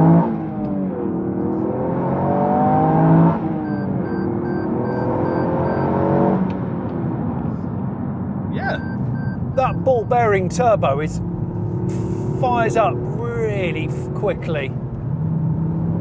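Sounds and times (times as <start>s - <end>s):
car engine accelerating hard: 0.0s - 7.2s, 8.8s - 16.0s
road and tyre noise: 0.0s - 16.0s.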